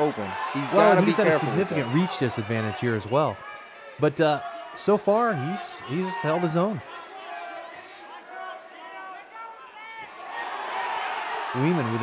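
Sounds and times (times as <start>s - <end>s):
crowd hubbub: 0.0s - 4.2s
voices shouting: 0.0s - 12.0s.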